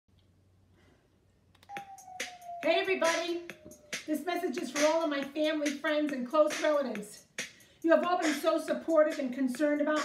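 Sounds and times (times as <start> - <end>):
clicks: 1.5 - 1.9.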